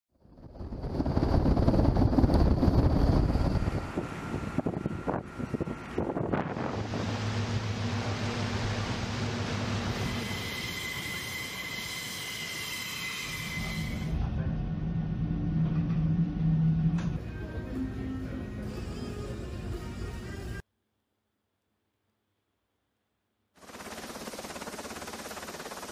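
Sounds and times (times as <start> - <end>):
loud rumble: 0.2 - 9.9
high engine whine: 0.2 - 10.6, 13.9 - 20.6
wind at sea: 0.2 - 11.4
boat engine drone: 0.5 - 10.4.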